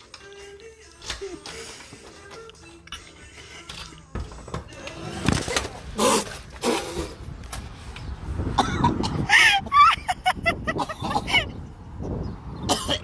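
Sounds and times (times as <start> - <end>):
background music: 0.0 - 6.6.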